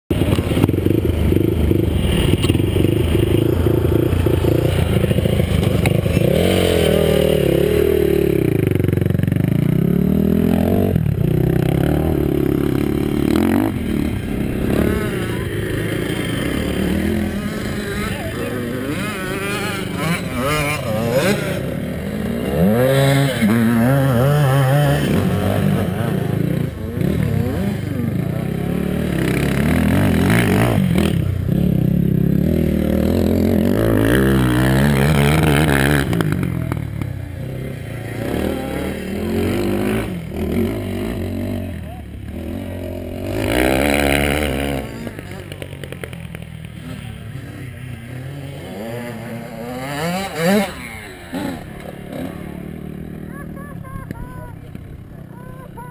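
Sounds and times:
atv and dirt bike engines revving: 0:00.1 - 0:55.9.

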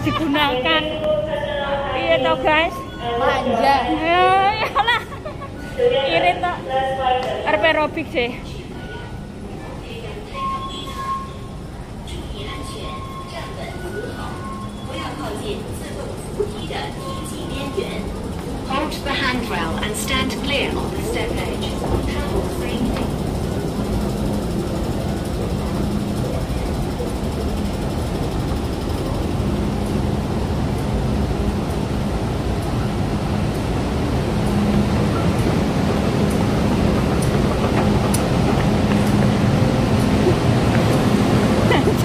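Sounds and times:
voices: 0:00.0 - 0:31.0, 0:33.6 - 0:42.0
low station rumble: 0:00.0 - 0:42.0.

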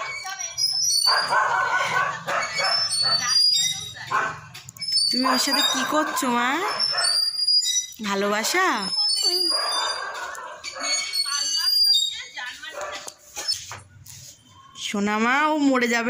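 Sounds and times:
high-pitched squeaks: 0:00.0 - 0:15.0.

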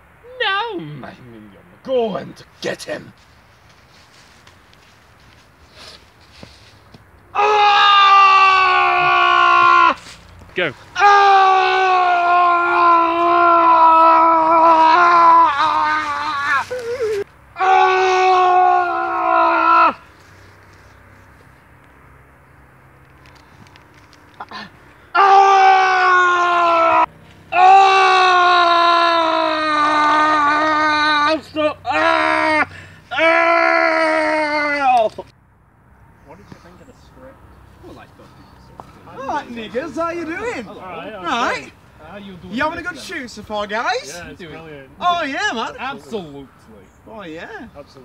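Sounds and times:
man screaming high-pitched: 0:07.4 - 0:10.0, 0:11.0 - 0:20.0, 0:24.4 - 0:35.1.

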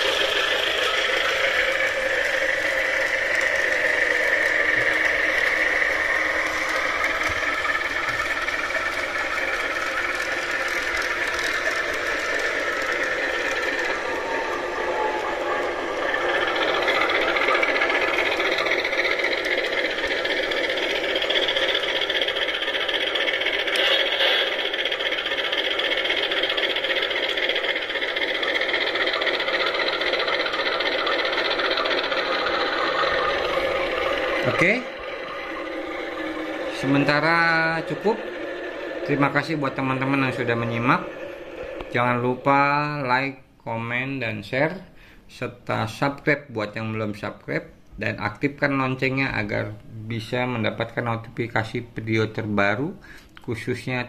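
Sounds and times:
model locomotive running on track: 0:00.0 - 0:54.0
simulated diesel engine from speaker: 0:00.0 - 0:54.0.

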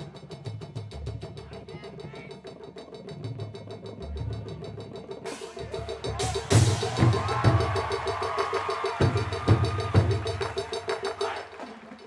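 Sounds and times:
fast percussion clicking: 0:00.0 - 0:12.0.

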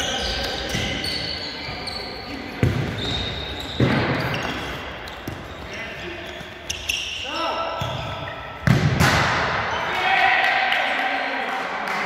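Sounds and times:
sneakers squeaking on court: 0:00.0 - 0:08.8
ball kicked: 0:08.6 - 0:09.3
players shouting: 0:09.7 - 0:11.6.

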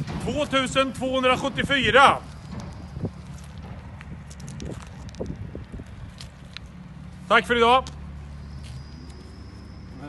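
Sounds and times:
wind rumble on microphone: 0:00.0 - 0:06.9
handling clicks and rustles: 0:00.0 - 0:09.2.

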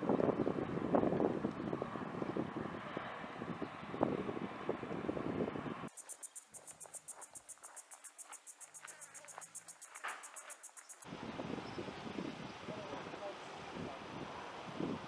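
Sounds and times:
insects chirring: 0:05.9 - 0:11.1.

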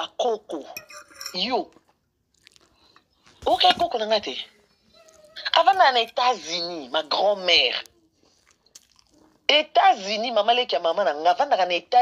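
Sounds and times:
tableware clinking: 0:00.7 - 0:01.6, 0:05.4 - 0:06.7
person talking: 0:03.4 - 0:04.5, 0:05.4 - 0:07.9.

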